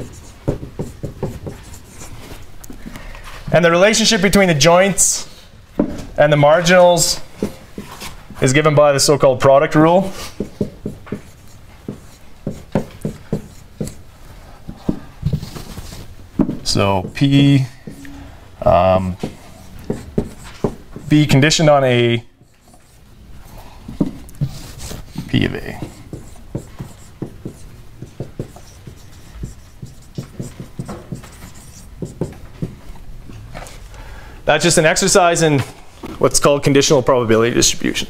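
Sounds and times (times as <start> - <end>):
marker writing on whiteboard: 0.0 - 2.5, 10.0 - 18.2, 19.1 - 33.0.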